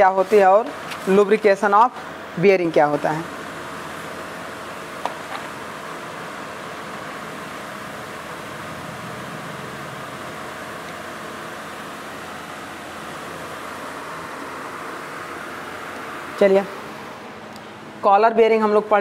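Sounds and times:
room noise hiss: 0.0s - 19.0s.

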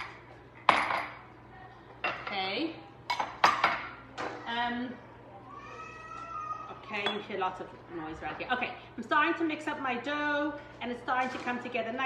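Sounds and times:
glass clinking on stone counter: 0.0s - 1.2s, 7.0s - 7.3s.

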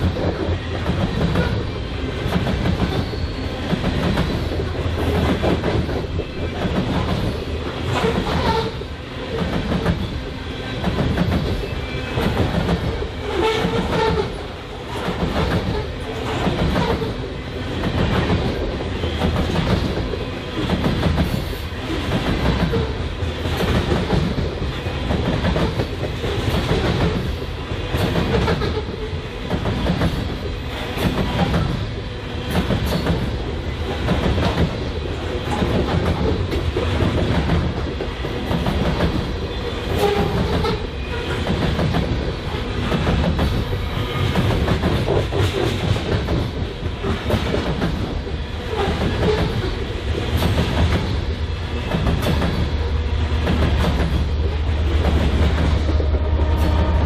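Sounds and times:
rhythmic clickety-clack: 0.0s - 57.0s
train wheels rumbling on rails: 0.0s - 57.0s.

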